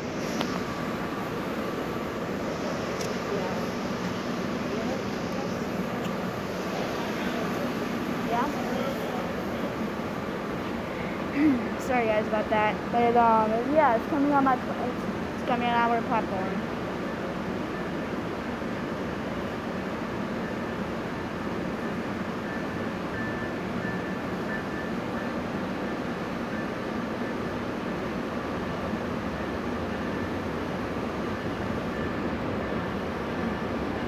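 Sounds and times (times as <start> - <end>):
faint high whine: 0.0 - 34.0.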